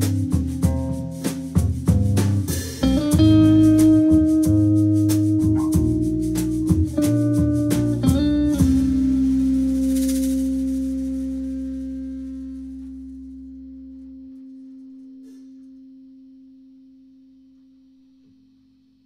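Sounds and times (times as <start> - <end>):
low bass note: 0.0 - 17.5
electric guitar chord ringing: 2.5 - 18.0.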